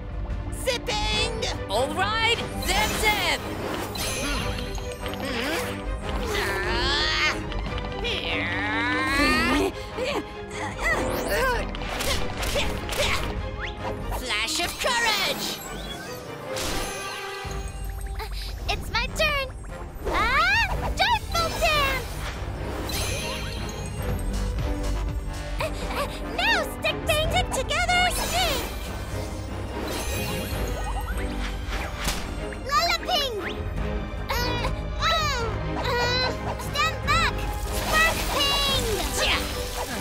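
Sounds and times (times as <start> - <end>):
background music: 0.0 - 40.0.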